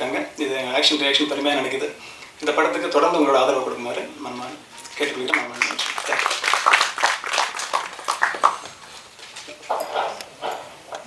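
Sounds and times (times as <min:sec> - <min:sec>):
man speaking over a microphone: 0:00.0 - 0:06.4.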